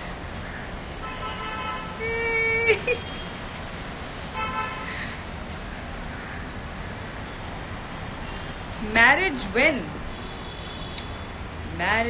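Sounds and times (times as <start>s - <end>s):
city street traffic hum: 0.0s - 12.0s
car horn tooting: 1.0s - 2.0s.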